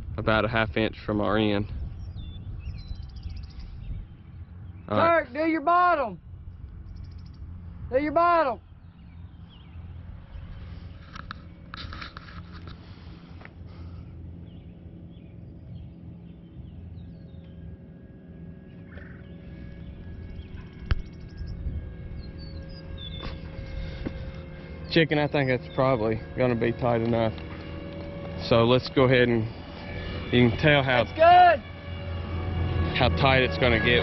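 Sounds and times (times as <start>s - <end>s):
low outdoor rumble: 0.0s - 34.0s.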